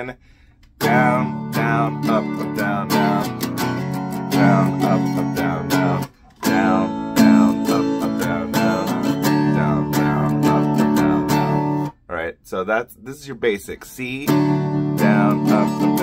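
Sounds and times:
acoustic guitar strumming: 0.8s - 12.0s, 13.9s - 16.0s.

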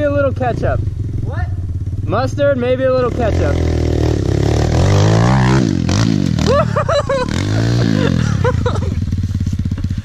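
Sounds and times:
motorbike engine revving: 0.0s - 10.0s.

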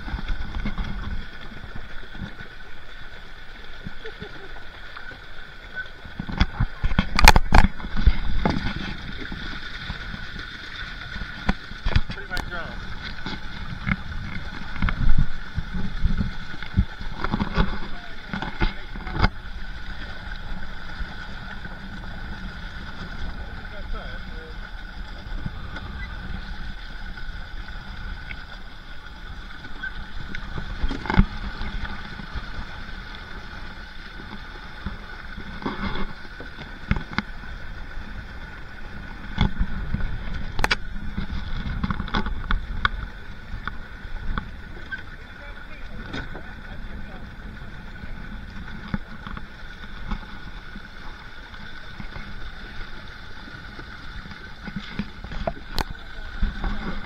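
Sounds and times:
water lapping against kayak hull: 0.0s - 57.0s.

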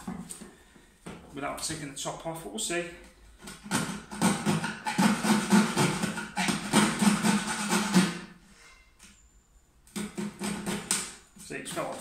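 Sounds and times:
saw rasping through wood: 3.5s - 8.3s.

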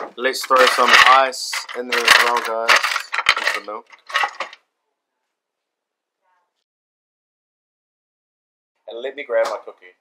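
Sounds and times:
ice cubes rattling in plastic bin: 0.4s - 4.6s.

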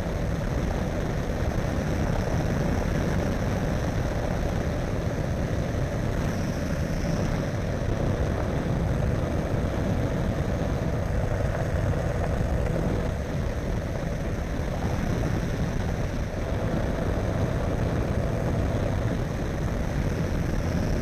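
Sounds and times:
propeller engine droning: 0.0s - 21.0s.

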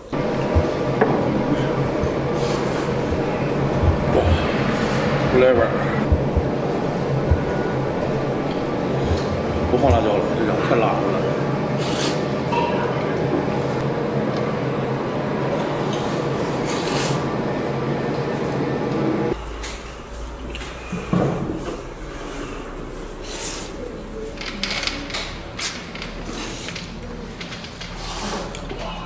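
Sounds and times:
noisy background: 0.0s - 29.0s.

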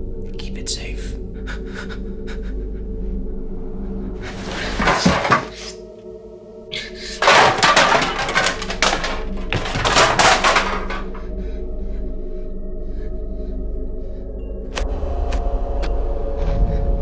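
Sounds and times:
empty cans clattering together: 4.3s - 5.8s, 7.2s - 11.2s.

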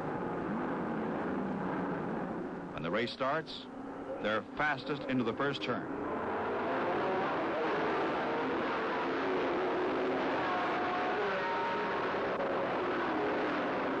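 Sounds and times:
racing car engines passing: 3.7s - 14.0s.

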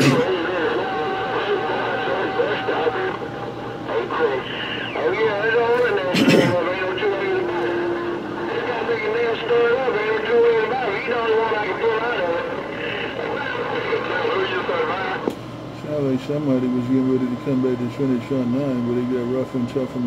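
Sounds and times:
garbled radio voices: 0.0s - 15.3s
radio interference: 0.0s - 20.0s.

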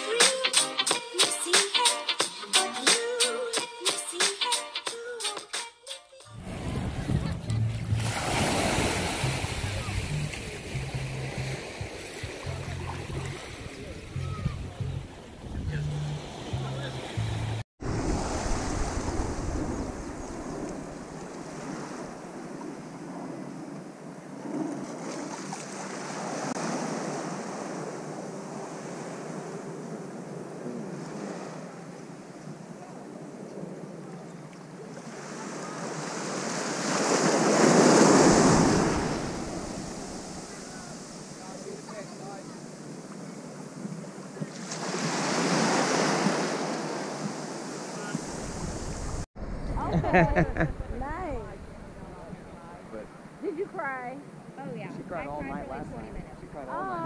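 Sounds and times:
small waves lapping on shore: 6.4s - 14.4s, 15.1s - 33.4s, 34.0s - 57.0s.

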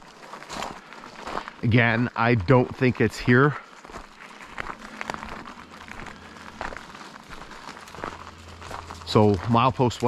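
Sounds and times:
footsteps crunching on gravel: 0.0s - 10.0s
steady low hum: 0.7s - 10.0s.

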